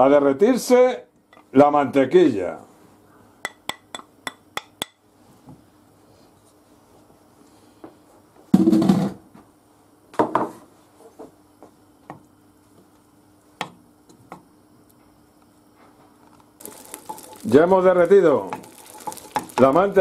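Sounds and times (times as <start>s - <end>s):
butter sizzling: 16.6s - 20.0s.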